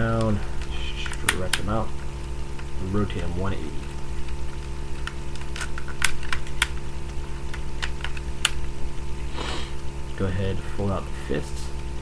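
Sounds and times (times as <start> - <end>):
low electrical hum: 0.0 - 12.0
plastic parts clicking and snapping: 0.1 - 1.7, 4.2 - 8.6.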